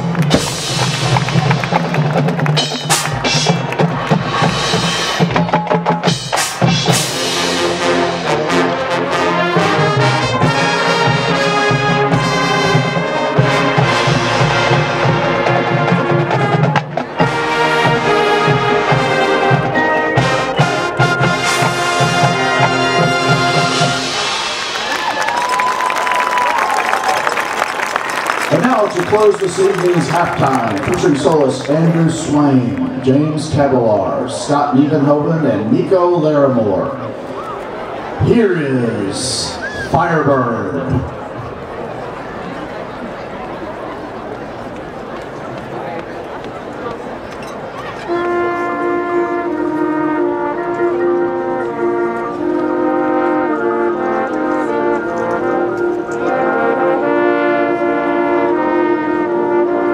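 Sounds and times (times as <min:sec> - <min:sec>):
drumline beat: 0:00.0 - 0:26.4, 0:28.2 - 0:34.0
marching band brass: 0:00.0 - 0:59.9.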